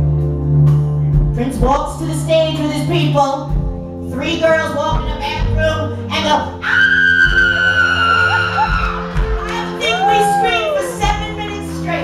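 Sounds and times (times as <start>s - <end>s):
keyboard sustained chords: 0.0s - 12.0s.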